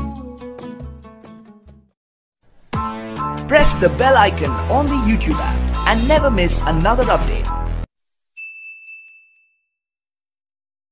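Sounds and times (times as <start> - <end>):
notification bell ding: 8.4 - 9.8.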